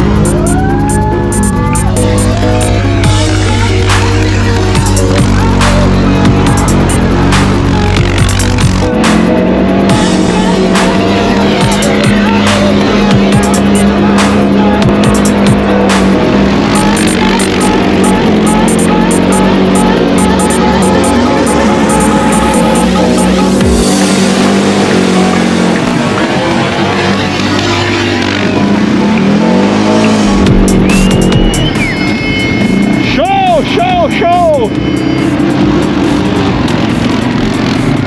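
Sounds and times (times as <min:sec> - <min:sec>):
loud electronic music: 0:00.0 - 0:38.0
quad engine revving: 0:00.0 - 0:38.0.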